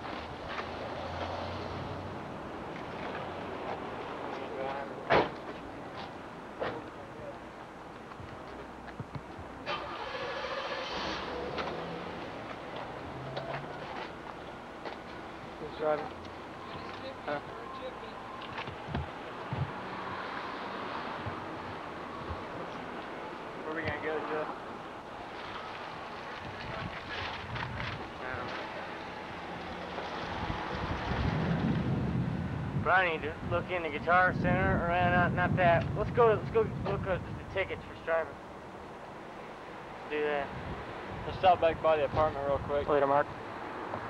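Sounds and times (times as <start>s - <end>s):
traffic noise: 0.0s - 44.0s
motor vehicle passing: 18.6s - 24.5s, 25.2s - 32.8s
wind buffeting microphone: 18.7s - 19.8s, 26.4s - 28.1s, 30.2s - 37.7s.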